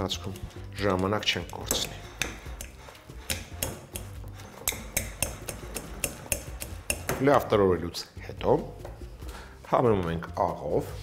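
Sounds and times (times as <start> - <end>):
fork scraping glass bowl: 1.4 - 7.1.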